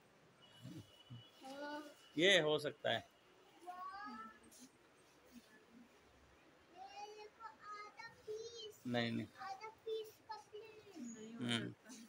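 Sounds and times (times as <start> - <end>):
faint high-pitched vocal sound: 3.6 - 4.7, 6.7 - 12.0.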